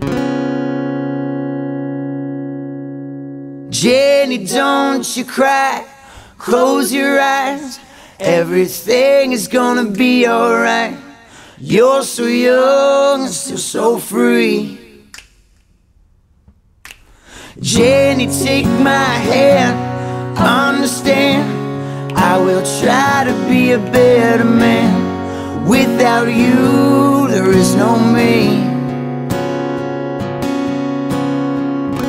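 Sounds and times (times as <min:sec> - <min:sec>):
acoustic guitar chord ringing: 0:00.0 - 0:04.2, 0:17.6 - 0:32.0
finger snaps: 0:15.1 - 0:15.8, 0:16.8 - 0:17.4.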